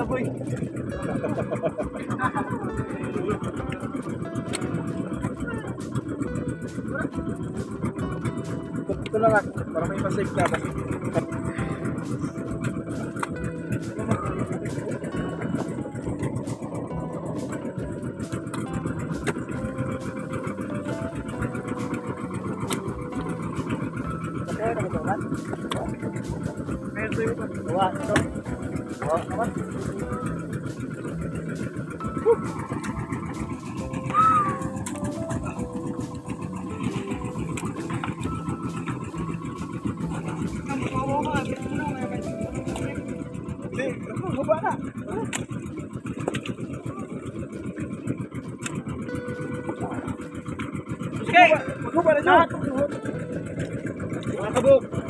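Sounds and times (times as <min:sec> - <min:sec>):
engine drone: 0:00.0 - 0:55.0
music playing: 0:00.0 - 0:55.0.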